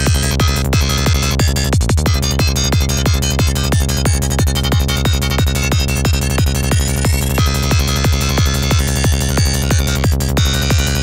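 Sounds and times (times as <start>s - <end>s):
fast kick drum: 0.0s - 11.0s
psytrance music: 0.0s - 11.0s.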